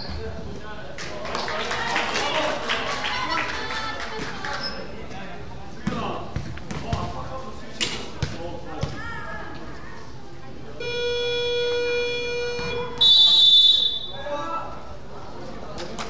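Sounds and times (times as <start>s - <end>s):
voices in a gym: 0.0s - 16.0s
basketball bouncing on gym floor: 5.8s - 7.1s.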